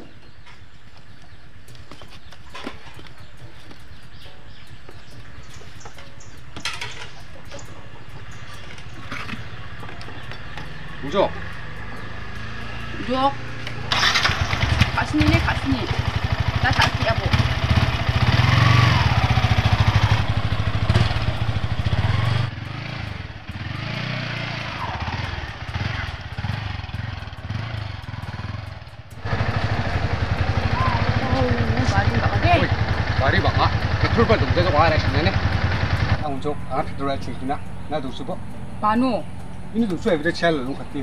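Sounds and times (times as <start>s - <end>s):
motorcycle engine running: 0.2s - 41.0s
people's voices: 30.6s - 35.4s.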